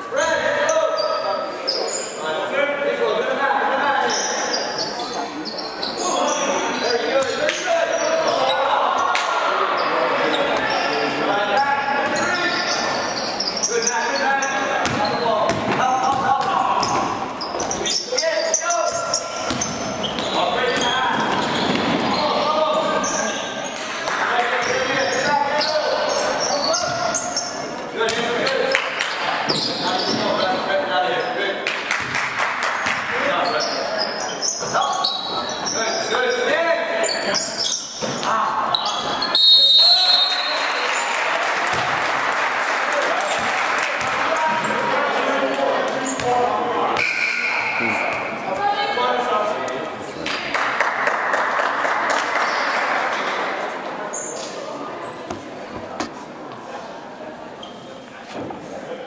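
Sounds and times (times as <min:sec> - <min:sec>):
indistinct voices in gym: 0:00.0 - 0:59.0.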